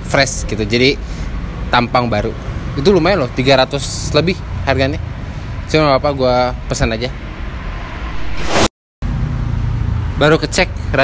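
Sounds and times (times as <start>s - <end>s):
brief rising hiss: 7.8s - 8.7s.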